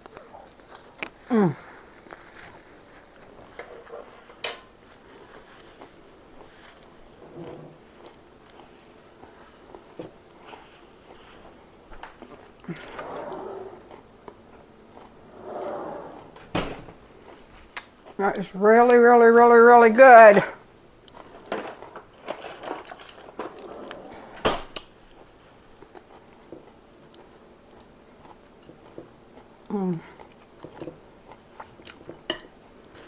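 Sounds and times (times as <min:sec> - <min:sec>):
chewing raw vegetables: 0:13.8 - 0:15.2, 0:24.8 - 0:33.0.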